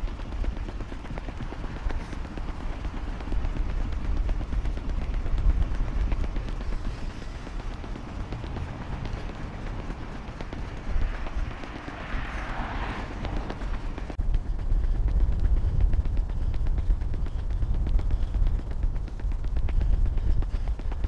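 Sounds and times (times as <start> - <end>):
running footsteps: 0.0 - 21.0
steady low rumble: 0.0 - 21.0.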